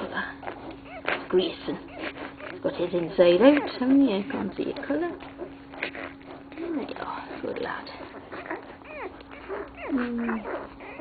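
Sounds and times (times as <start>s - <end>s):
puppies squeaking: 0.0s - 11.0s.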